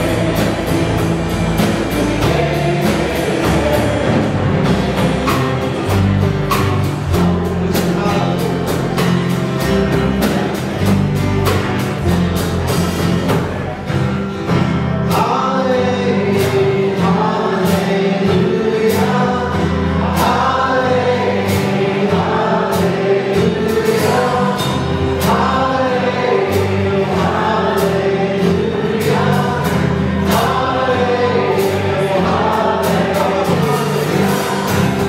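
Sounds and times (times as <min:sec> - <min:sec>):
acoustic guitars: 0:00.0 - 0:35.0
drum kit beat: 0:00.0 - 0:35.0
electric bass: 0:00.0 - 0:35.0
voices singing together: 0:00.0 - 0:35.0.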